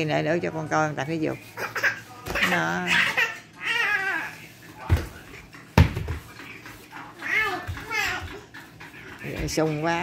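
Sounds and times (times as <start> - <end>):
thumps on foam mat: 4.8 - 6.3.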